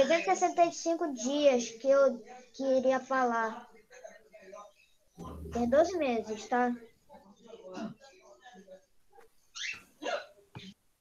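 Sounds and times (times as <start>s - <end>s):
faint vocal sounds over call line: 3.5s - 8.9s.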